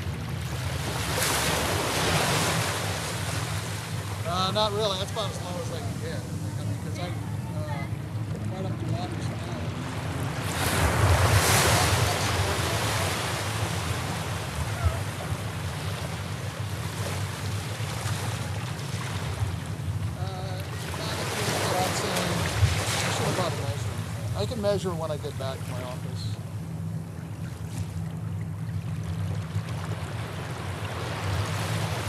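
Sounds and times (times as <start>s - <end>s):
ocean surf on beach: 0.0s - 26.6s, 29.1s - 32.0s
wind rumbling on microphone: 22.4s - 23.3s.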